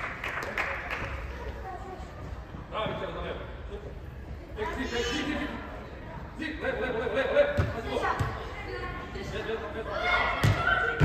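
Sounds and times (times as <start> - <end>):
echoing shouts and voices: 0.5 - 11.0.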